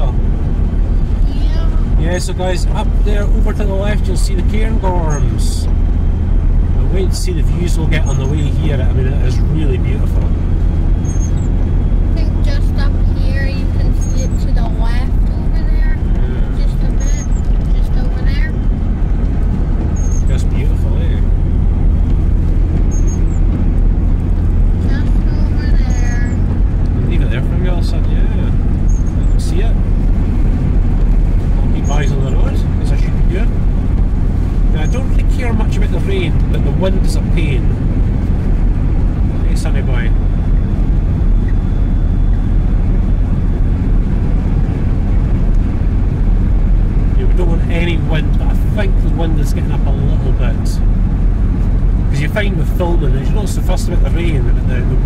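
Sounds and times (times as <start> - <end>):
engine and tyre rumble in cabin: 0.0 - 55.0.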